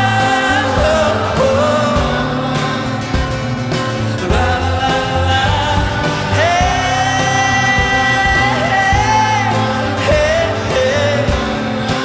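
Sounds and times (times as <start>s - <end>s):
live pop-rock band playing: 0.0s - 12.0s
person singing: 0.0s - 12.0s.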